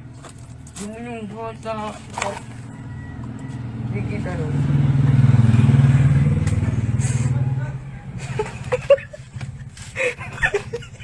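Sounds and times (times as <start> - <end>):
small motorcycle engine running: 2.4 - 9.7.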